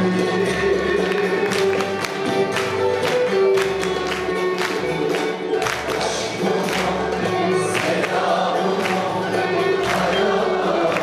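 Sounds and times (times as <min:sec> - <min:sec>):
choir singing: 0:06.0 - 0:11.0.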